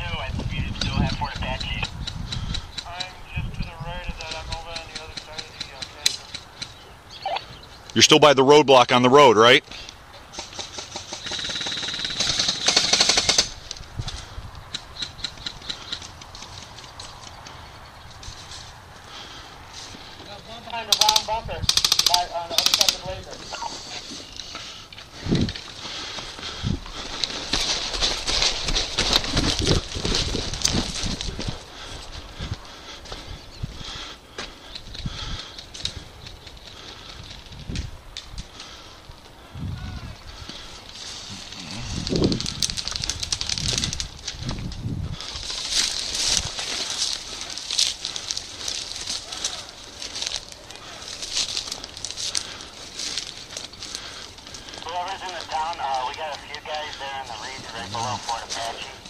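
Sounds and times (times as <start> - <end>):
rustling through dry reeds: 13.0 - 32.8, 40.4 - 59.0
airsoft gunfire: 21.0 - 23.0
short voice: 54.9 - 59.0.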